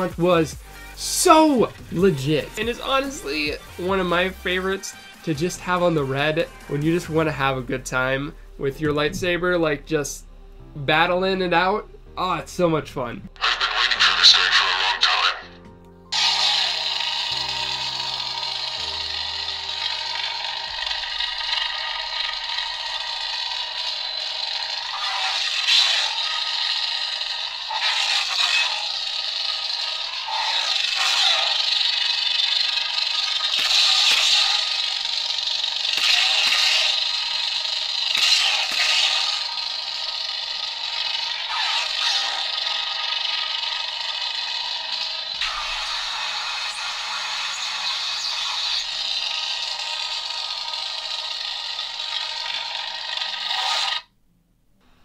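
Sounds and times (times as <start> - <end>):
crackling lightsaber hum: 13.0 - 54.1
lightsaber igniting: 16.1 - 54.1.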